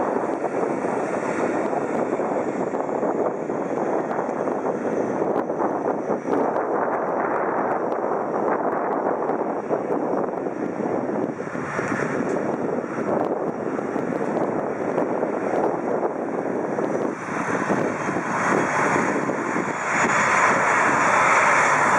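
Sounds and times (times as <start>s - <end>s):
propeller airliner engine drone: 0.0s - 21.9s.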